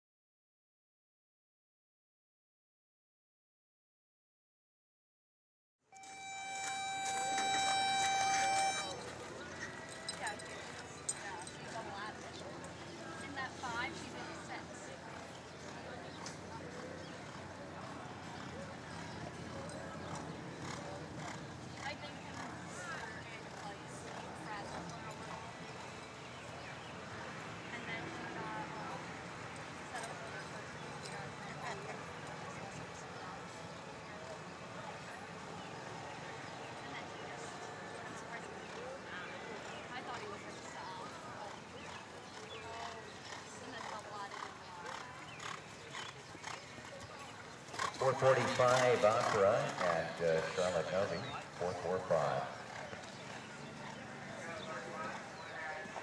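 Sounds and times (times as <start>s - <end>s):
people talking: 6.0s - 25.7s, 27.1s - 29.2s, 29.8s - 47.4s, 48.0s - 52.6s.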